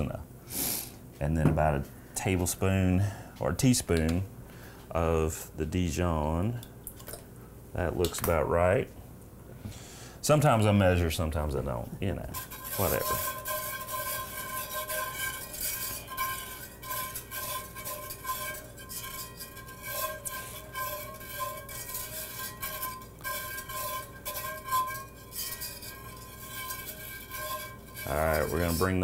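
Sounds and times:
utensil stirring sauce in metal pan: 0:12.2 - 0:29.0.

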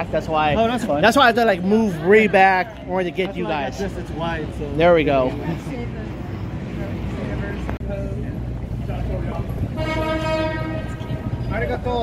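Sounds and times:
background chatter: 0:00.0 - 0:12.0
horn steady tone: 0:09.6 - 0:11.8.

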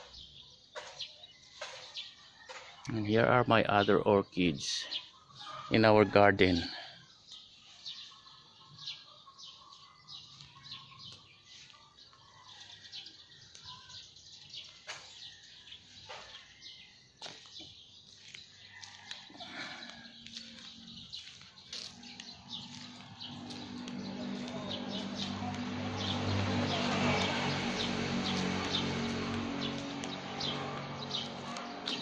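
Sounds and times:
birds chirping: 0:00.0 - 0:32.0.

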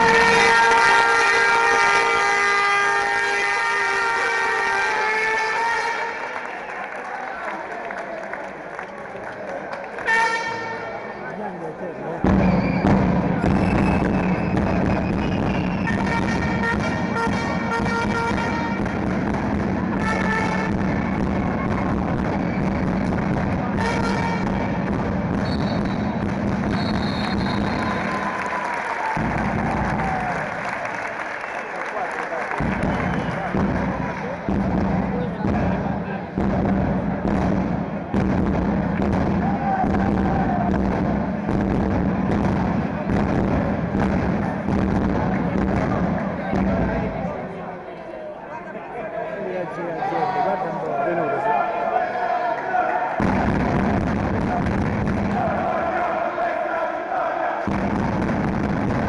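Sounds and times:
air horn blasts: 0:00.0 - 0:06.4, 0:10.0 - 0:11.2, 0:15.8 - 0:19.0, 0:19.9 - 0:20.9, 0:23.7 - 0:24.8
crowd din: 0:00.0 - 0:59.0.

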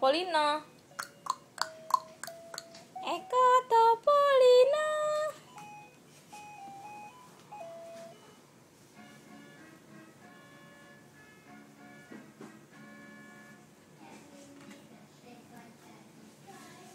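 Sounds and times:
faint electronic tune: 0:00.6 - 0:03.7, 0:05.3 - 0:12.1.

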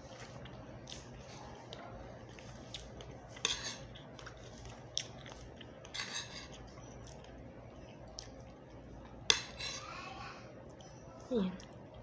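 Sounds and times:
cutlery clinking on a plate: 0:03.4 - 0:03.9
cutlery scraping a plate: 0:03.4 - 0:03.9, 0:05.8 - 0:06.6, 0:09.3 - 0:09.8.

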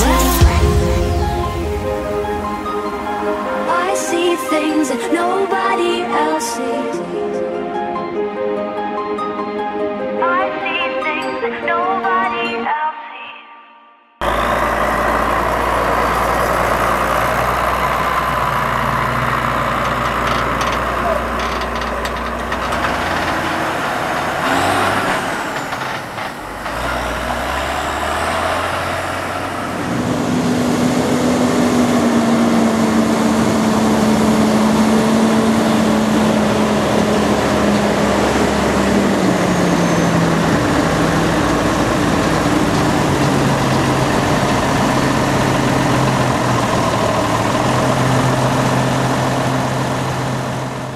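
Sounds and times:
tractor engines running: 0:00.0 - 0:06.6, 0:14.2 - 0:50.9
louder steady engine tone: 0:14.2 - 0:50.9.

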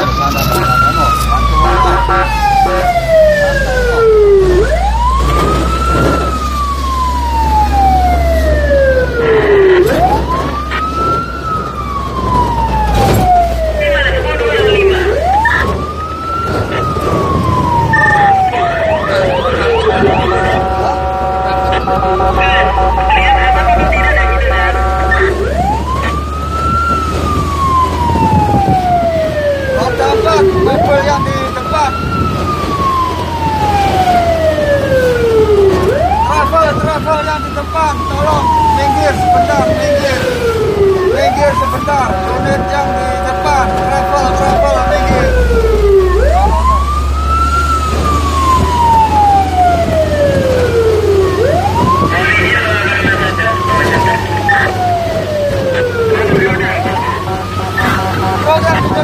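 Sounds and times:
fire engine siren wailing: 0:00.0 - 0:59.0
steady blaring siren tones: 0:00.0 - 0:59.0
truck engine rumble: 0:00.0 - 0:59.0.

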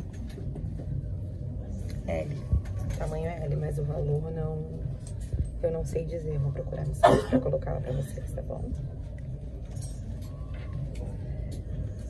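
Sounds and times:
low store background rumble: 0:00.0 - 0:12.0.

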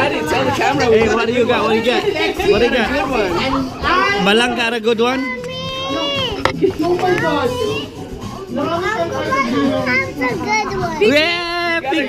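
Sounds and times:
children and adults talking: 0:00.0 - 0:12.0
young girl's high voice: 0:05.3 - 0:06.4.

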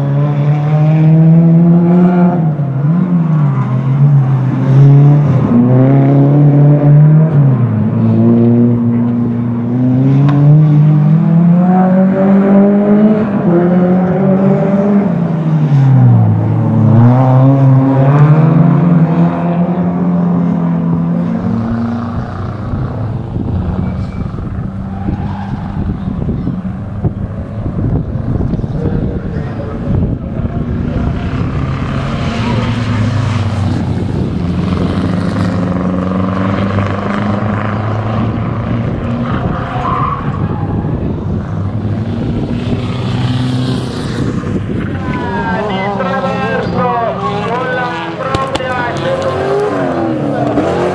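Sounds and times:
rally car engines revving: 0:00.0 - 0:50.9.

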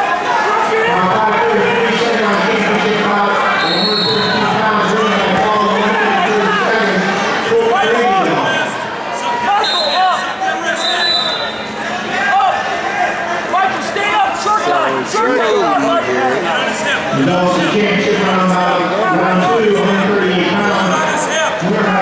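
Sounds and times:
voices echoing in a gym: 0:00.0 - 0:22.0.

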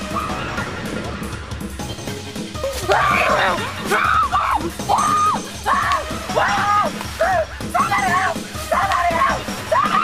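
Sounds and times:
background music: 0:00.0 - 0:10.0
woman screaming: 0:02.9 - 0:08.2, 0:08.8 - 0:10.0.

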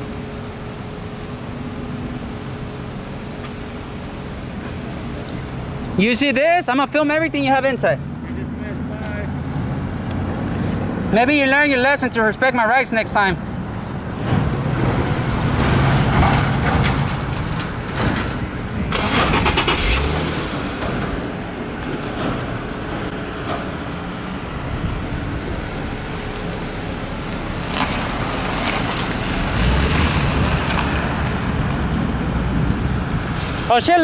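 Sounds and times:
car engines rumbling: 0:00.0 - 0:34.0
road traffic noise: 0:00.0 - 0:34.0.

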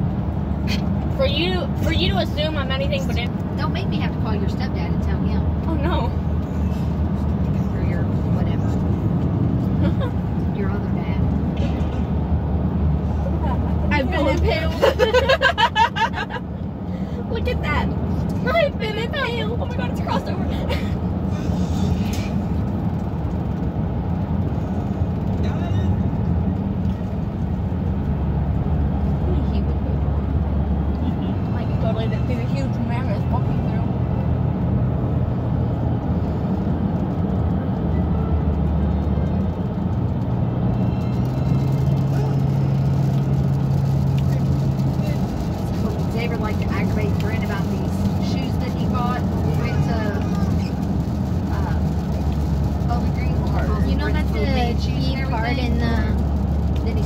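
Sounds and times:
car road and engine drone: 0:00.0 - 0:57.0.

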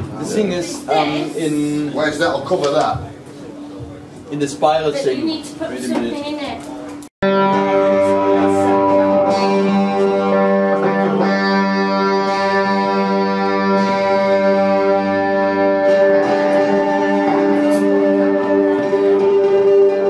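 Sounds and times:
drone of held notes: 0:07.2 - 0:20.0
plucked strings: 0:07.2 - 0:20.0
rock band playing live: 0:07.2 - 0:20.0.

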